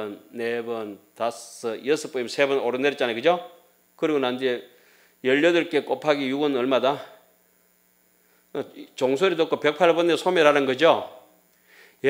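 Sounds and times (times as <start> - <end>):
man speaking: 0.0 - 7.3, 8.6 - 11.2
faint electrical mains hum: 0.0 - 12.0.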